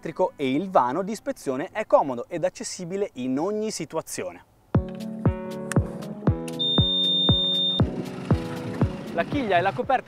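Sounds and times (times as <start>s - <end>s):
background music with steady beat: 4.7s - 10.0s
high electronic beep: 6.6s - 7.9s.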